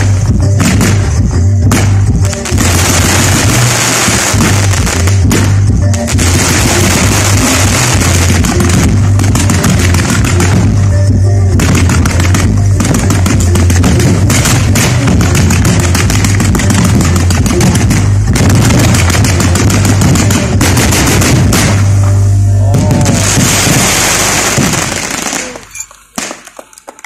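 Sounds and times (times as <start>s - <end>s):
loud music: 0.0s - 25.7s
fireworks crackling: 0.0s - 27.0s.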